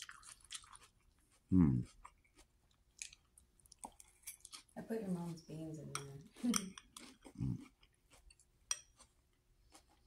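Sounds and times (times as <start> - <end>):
fork clinking against ceramic bowl: 5.9 - 7.1, 8.7 - 9.0.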